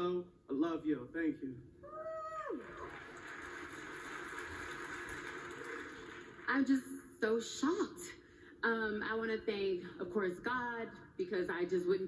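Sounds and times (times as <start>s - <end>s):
audience applauding through speaker: 2.5s - 6.6s.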